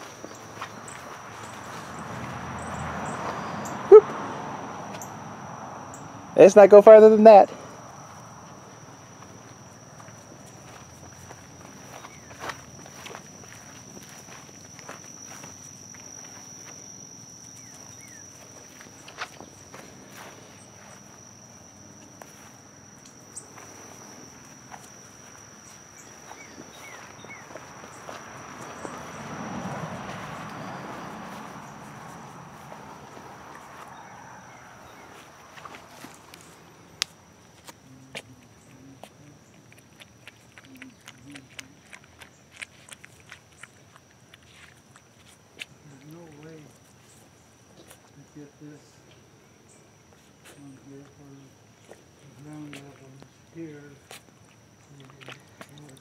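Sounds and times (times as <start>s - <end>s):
high insect drone: 0.0s - 56.0s.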